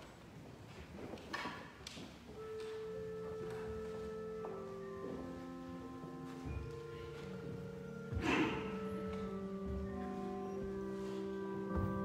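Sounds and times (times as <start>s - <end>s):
pipe organ chords: 2.4s - 12.0s.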